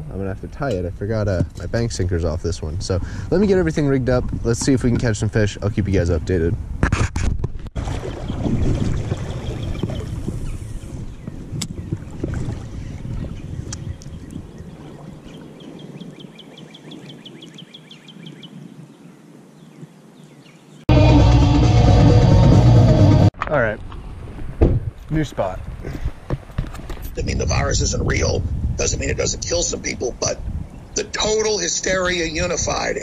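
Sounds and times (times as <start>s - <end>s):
wind rumbling on microphone: 0.0s - 20.8s, 23.4s - 33.0s
loud music: 20.9s - 23.3s.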